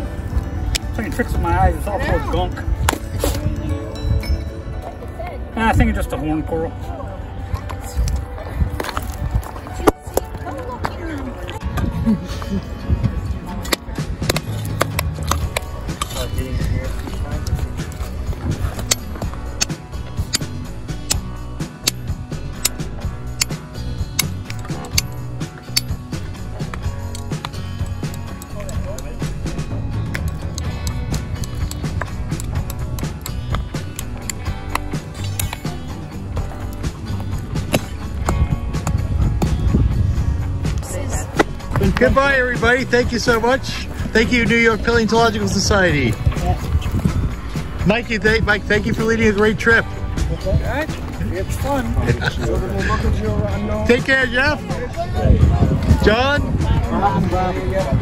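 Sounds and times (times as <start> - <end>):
background music: 0.0 - 58.0.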